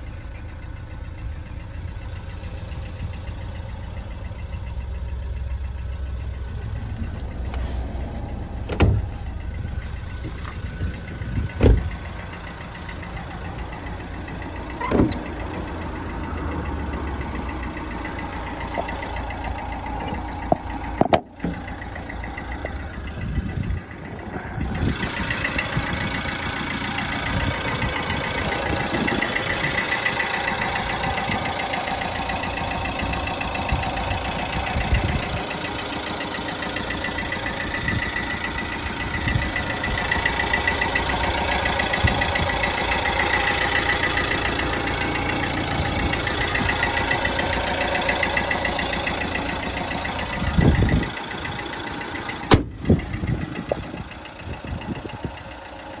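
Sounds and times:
van engine idling: 0.0s - 56.0s.

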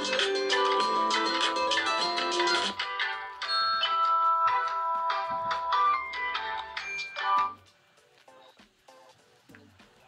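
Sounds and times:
phone ringtone melody: 0.0s - 7.6s.

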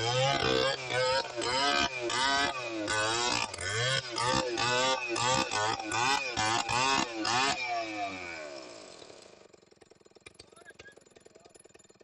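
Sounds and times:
chainsaw cutting wood: 0.0s - 12.0s.

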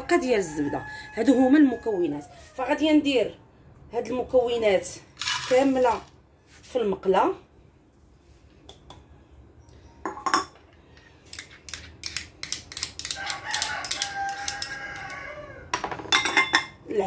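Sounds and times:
spoon clinking on ceramic dish: 10.0s - 10.6s, 16.0s - 16.8s.

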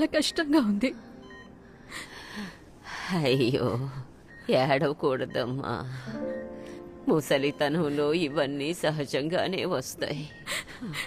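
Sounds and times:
faint high electronic beeps: 0.0s - 1.8s, 3.3s - 11.0s
woman sobbing: 10.1s - 11.0s.

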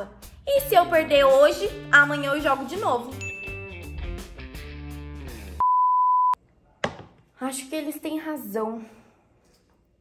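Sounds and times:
background music: 0.0s - 5.6s.

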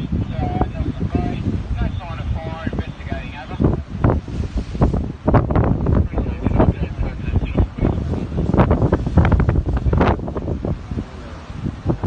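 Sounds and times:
surf: 0.0s - 12.0s
wind buffeting microphone: 0.0s - 12.0s.

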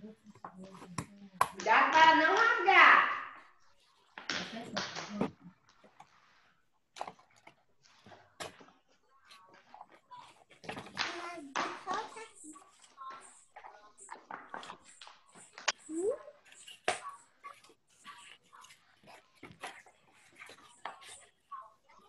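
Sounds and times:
faint indistinct voices: 7.8s - 22.0s.

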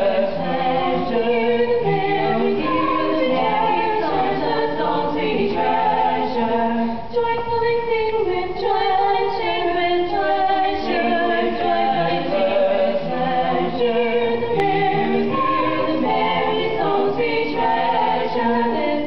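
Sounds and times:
a cappella vocal quartet singing: 0.0s - 19.0s.

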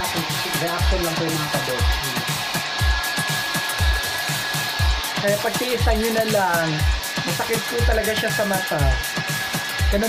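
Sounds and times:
background music with low beat: 0.0s - 10.0s
hair dryer blowing: 0.0s - 10.0s.

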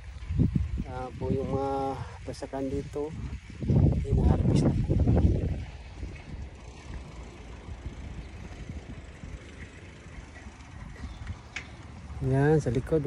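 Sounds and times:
wind on microphone: 0.0s - 12.8s.

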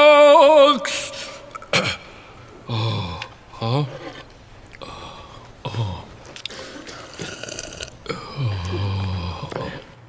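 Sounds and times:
quiet wet sounds: 1.2s - 10.0s
person burping: 1.5s - 4.1s, 5.6s - 10.0s.

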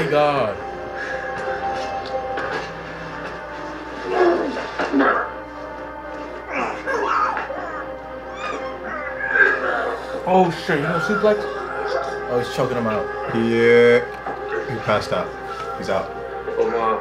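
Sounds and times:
sustained music score: 0.0s - 17.0s.

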